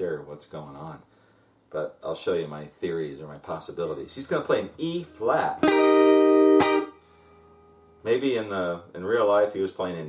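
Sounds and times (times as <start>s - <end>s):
electric guitar chord ringing: 5.0s - 7.9s.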